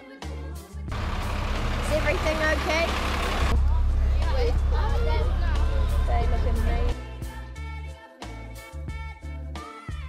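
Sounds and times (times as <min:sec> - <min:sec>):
truck engine rumbling: 0:00.9 - 0:06.9
voices calling: 0:01.0 - 0:07.0.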